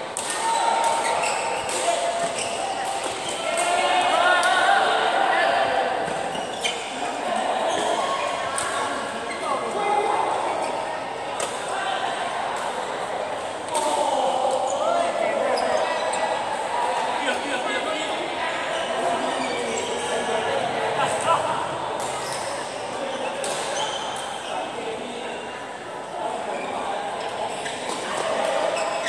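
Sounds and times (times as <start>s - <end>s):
shoes squeaking on court: 0.6s - 3.5s, 6.1s - 7.0s.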